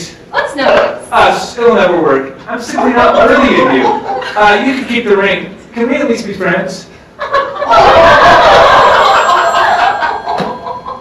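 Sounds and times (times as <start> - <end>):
audience laughing: 2.7 - 4.8, 7.2 - 11.0.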